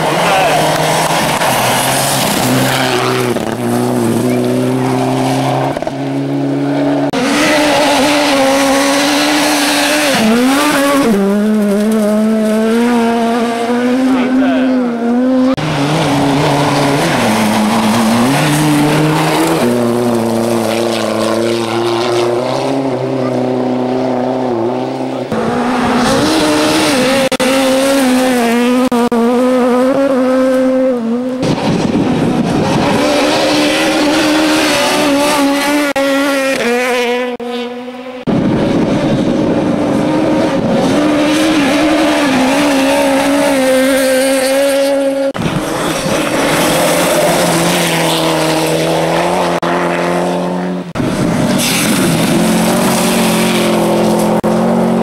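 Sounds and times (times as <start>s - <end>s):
rally car engines at full throttle: 0.0s - 55.0s.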